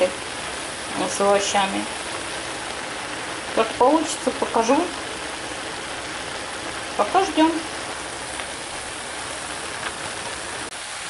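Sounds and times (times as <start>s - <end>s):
food sizzling in oil: 0.0s - 11.0s.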